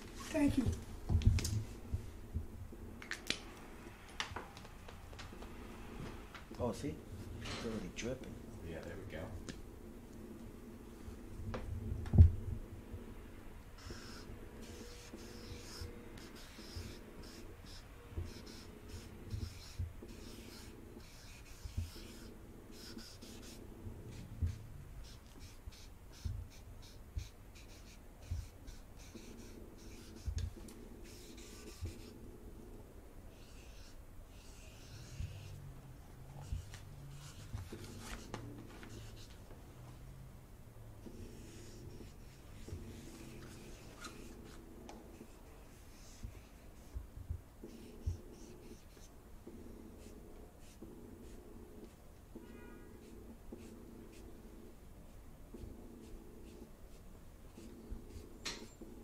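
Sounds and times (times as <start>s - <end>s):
marker scratching on paper: 13.8s - 32.2s, 33.3s - 35.6s, 36.4s - 39.4s, 41.0s - 54.7s, 55.5s - 59.0s.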